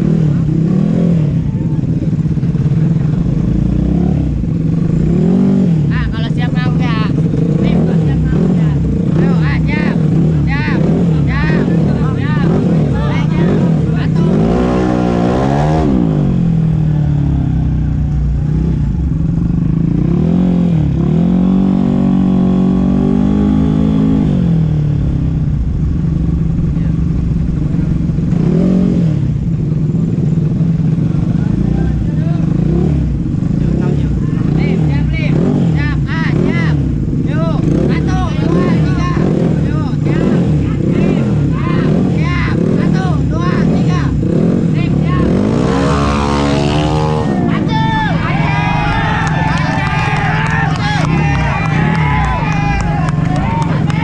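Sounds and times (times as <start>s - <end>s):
scooter engines idling and revving: 0.0s - 54.0s.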